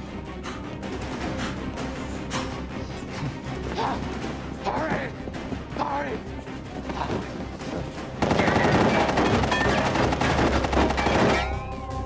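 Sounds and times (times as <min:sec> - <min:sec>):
automatic gunfire: 0:08.2 - 0:11.4.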